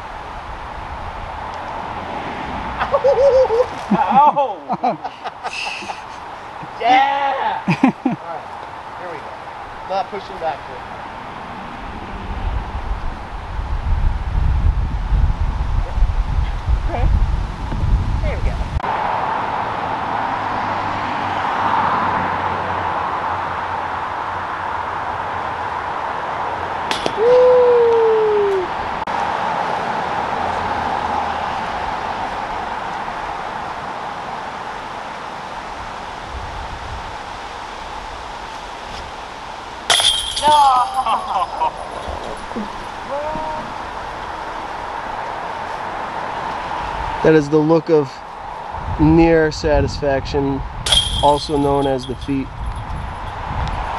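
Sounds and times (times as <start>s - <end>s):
steady background noise: 22.4s - 52.5s
person saying oh: 27.2s - 28.7s, 40.4s - 41.5s, 43.1s - 43.7s
metallic crash with ringing: 39.9s - 41.0s, 50.9s - 52.4s
players exclaiming: 40.4s - 43.7s.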